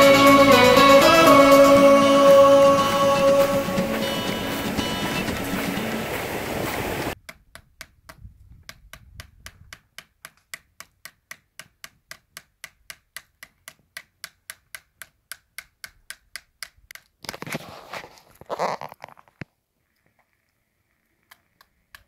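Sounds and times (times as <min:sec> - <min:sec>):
scraping rustle: 0:17.3 - 0:19.4.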